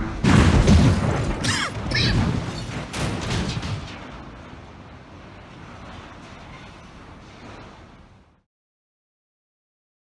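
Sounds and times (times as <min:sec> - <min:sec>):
heavy metal crash: 0:00.0 - 0:08.4
steady rushing noise: 0:00.0 - 0:08.5.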